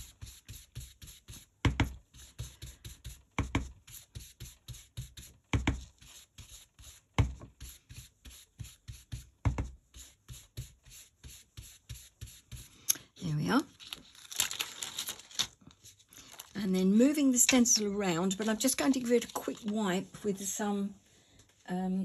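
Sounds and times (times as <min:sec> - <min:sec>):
stencil brush scratching on card: 0:00.0 - 0:12.8.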